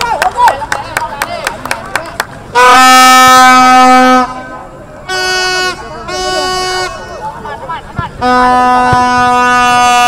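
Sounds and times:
higher-pitched horn blast: 0:02.5 - 0:07.3, 0:08.2 - 0:10.0
loud horn blast: 0:02.5 - 0:07.3, 0:08.2 - 0:10.0.

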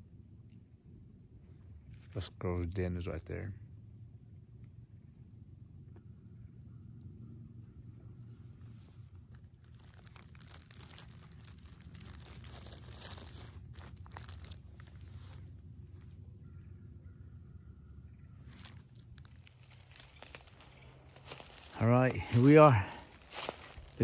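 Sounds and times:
plastic snack bag crinkling: 0:09.3 - 0:15.4, 0:18.6 - 0:24.0.

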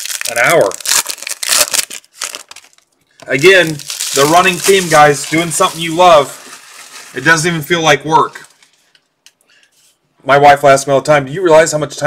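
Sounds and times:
foil wrapper crinkling and tearing: 0:00.0 - 0:07.7.

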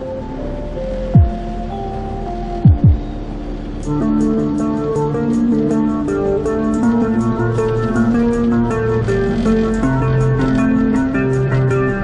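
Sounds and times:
held synth chords: 0:00.0 - 0:12.0
ticking beat with plucked chords: 0:00.0 - 0:12.0
deep bass booms falling in pitch: 0:01.2 - 0:01.6, 0:02.4 - 0:03.1.

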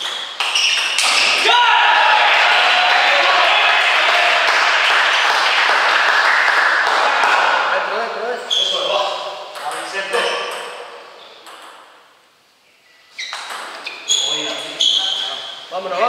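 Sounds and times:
voices in a sports hall: 0:00.0 - 0:16.0.

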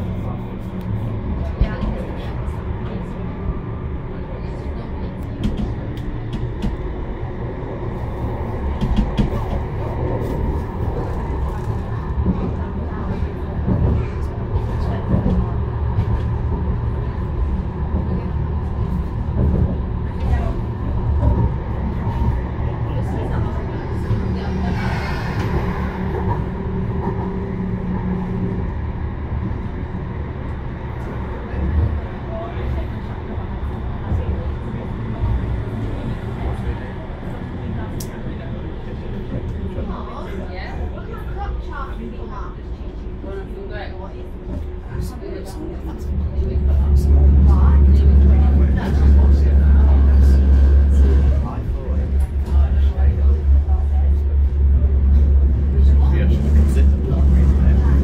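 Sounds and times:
tram rumble and hum: 0:00.0 - 0:58.0.

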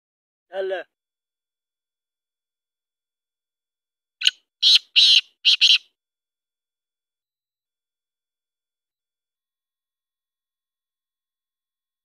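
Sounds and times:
francolin calling: 0:04.2 - 0:05.9.

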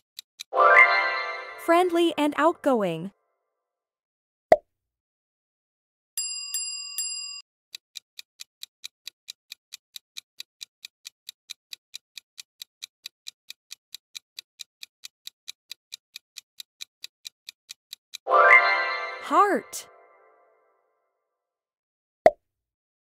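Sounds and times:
clock ticking: 0:07.7 - 0:18.2
ringing chime: 0:18.3 - 0:19.3.

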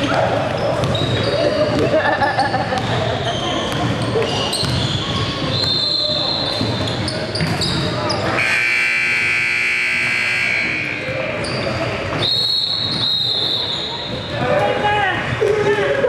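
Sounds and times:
basketball bouncing: 0:00.0 - 0:02.0, 0:02.6 - 0:03.1, 0:03.7 - 0:05.3
voices echoing in a gymnasium: 0:00.0 - 0:16.0
referee's whistle: 0:04.8 - 0:06.7, 0:08.4 - 0:11.6, 0:12.2 - 0:14.4
scoreboard buzzer: 0:08.4 - 0:11.1.

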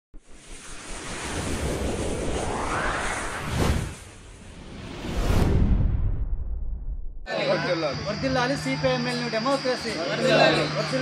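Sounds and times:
low rumble: 0:00.2 - 0:07.3
rushing whoosh: 0:00.2 - 0:07.3.

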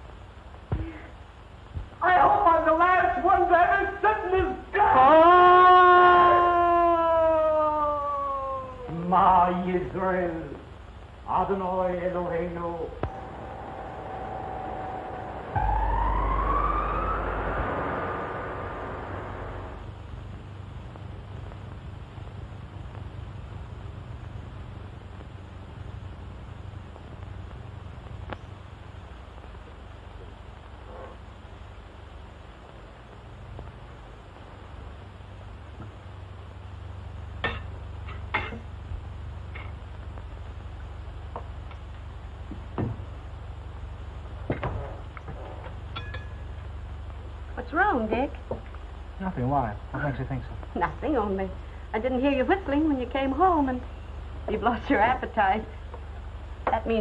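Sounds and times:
steady low hum: 0:00.0 - 0:57.0
siren-like wail: 0:13.0 - 0:20.1.

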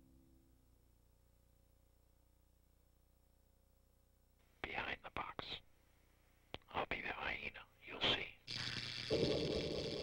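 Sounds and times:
person whispering: 0:04.6 - 0:05.7, 0:06.6 - 0:08.5.

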